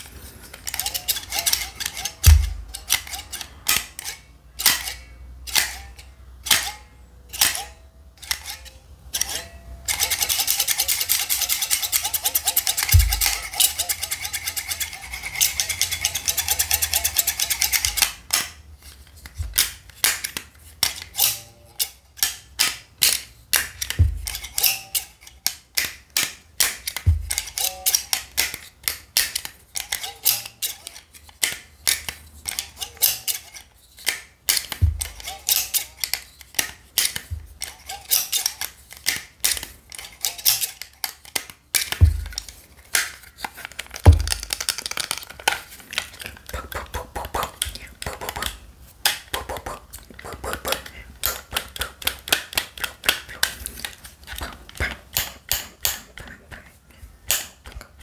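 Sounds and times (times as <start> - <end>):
dull thump: 24.0 - 24.3.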